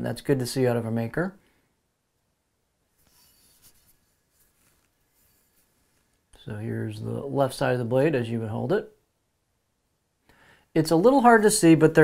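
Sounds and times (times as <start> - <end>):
faint rustling handling noise: 2.8 - 6.9.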